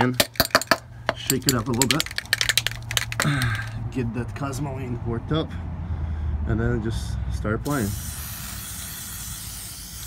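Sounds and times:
aerosol can rattling when shaken: 0:01.3 - 0:03.3.

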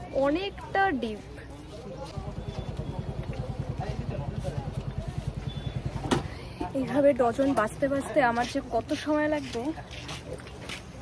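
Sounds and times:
faint market chatter: 0:00.0 - 0:11.0
motorcycle engine idling: 0:02.1 - 0:06.7.

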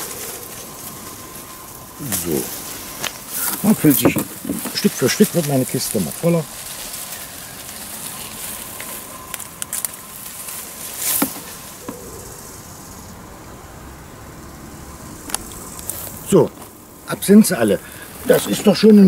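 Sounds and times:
bees buzzing: 0:00.0 - 0:19.0
outdoor background hiss: 0:00.0 - 0:19.0.

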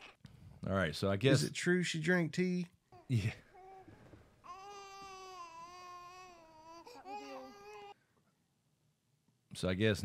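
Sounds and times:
baby crying: 0:03.0 - 0:08.0.

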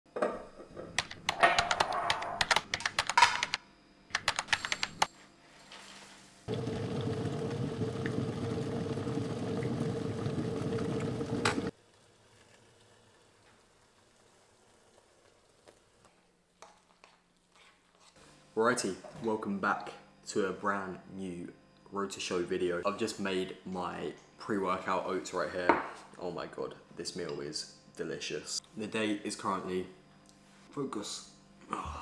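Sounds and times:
electric kettle boiling: 0:06.5 - 0:15.1.

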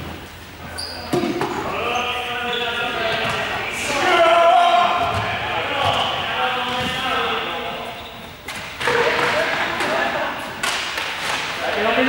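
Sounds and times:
players calling out: 0:00.8 - 0:11.0.

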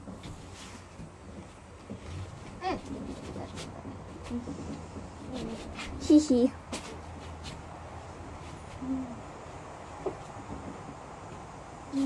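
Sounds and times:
girl humming: 0:08.8 - 0:09.3.

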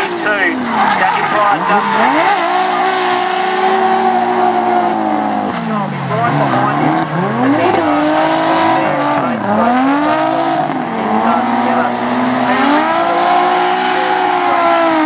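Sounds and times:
car engines revving: 0:00.0 - 0:15.0
tyres squealing: 0:00.0 - 0:15.0.

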